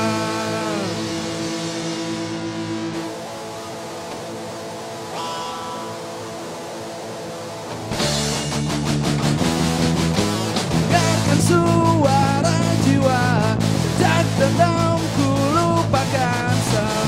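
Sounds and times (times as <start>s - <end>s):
electric guitars ringing chord: 0.0s - 17.0s
rock band playing live: 0.0s - 17.0s.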